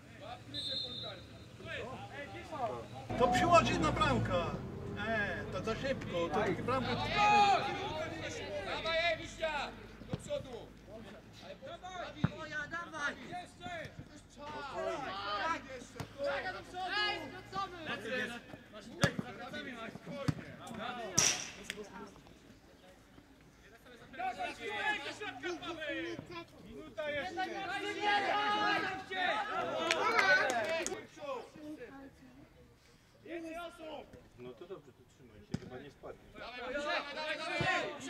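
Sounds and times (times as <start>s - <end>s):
players and spectators shouting: 0.2s - 9.9s, 11.8s - 18.4s, 24.1s - 31.5s, 36.4s - 38.0s.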